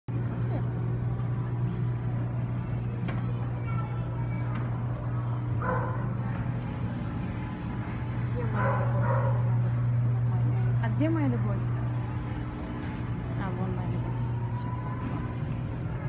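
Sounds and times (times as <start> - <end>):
aquarium equipment humming: 0.1 - 16.0
shop noise: 0.1 - 16.0.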